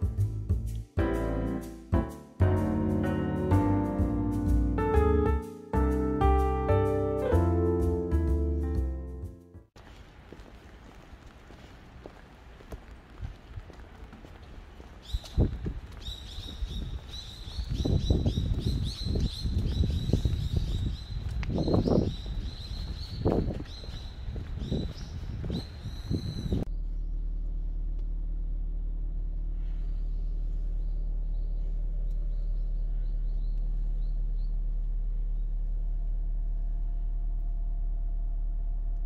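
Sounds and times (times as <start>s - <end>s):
footsteps on wet pavement: 9.8s - 26.5s
small bird chirping: 15.0s - 27.7s
low hum inside a car: 26.7s - 39.0s.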